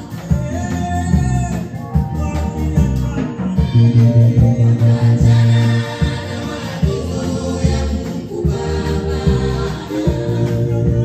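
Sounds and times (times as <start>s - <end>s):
sustained bass line: 0.1s - 11.0s
choir singing: 3.9s - 11.0s.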